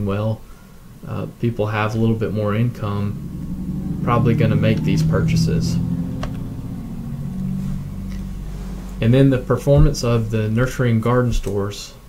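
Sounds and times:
low droning hum: 0.7 - 11.1.

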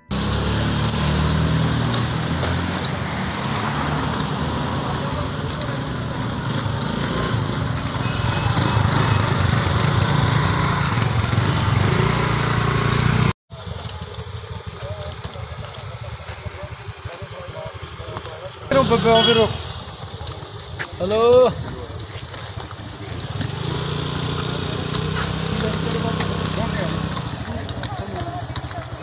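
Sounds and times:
motor scooter engines running: 0.0 - 29.0
street noise: 0.0 - 29.0
faint voices: 13.5 - 23.4.

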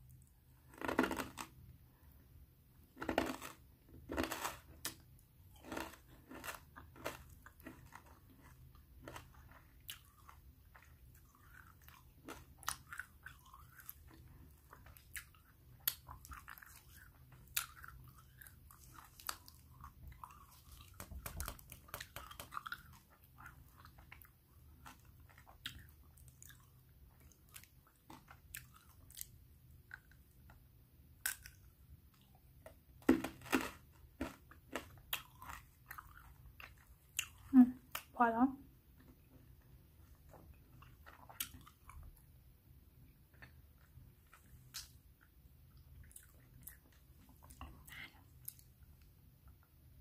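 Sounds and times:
chewing ice cream: 0.0 - 1.6, 2.9 - 30.6, 31.2 - 38.1, 39.0 - 42.4, 43.0 - 49.7.

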